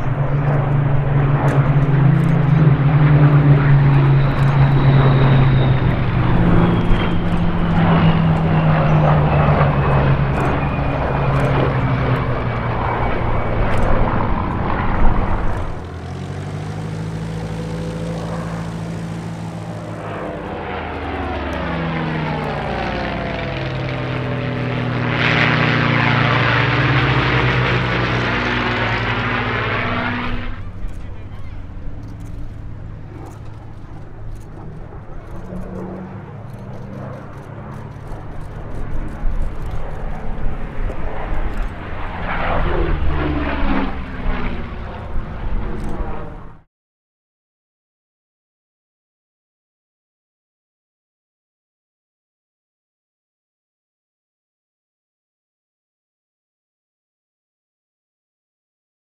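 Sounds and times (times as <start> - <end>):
propeller plane engine running: 0.0 - 46.7
propeller planes passing: 0.0 - 46.7.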